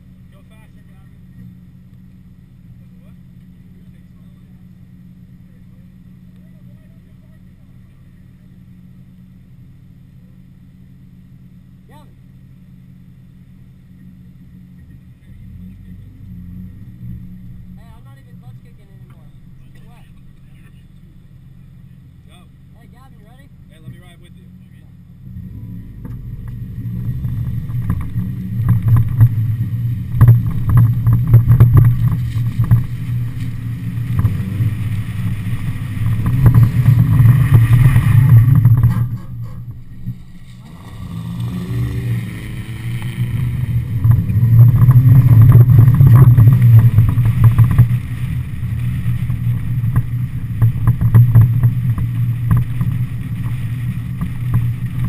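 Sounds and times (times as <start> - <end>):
car engine idling and revving: 0.0 - 55.0.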